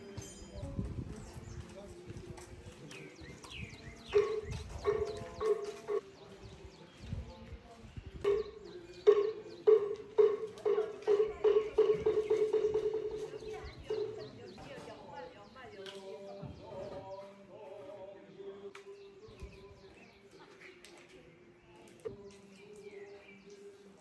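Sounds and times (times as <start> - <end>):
birds chirping: 0.0 - 24.0.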